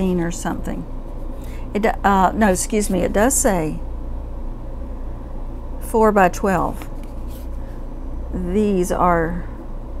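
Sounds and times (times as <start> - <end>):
person speaking: 0.0 - 0.9, 1.7 - 3.8
machinery humming: 0.0 - 10.0.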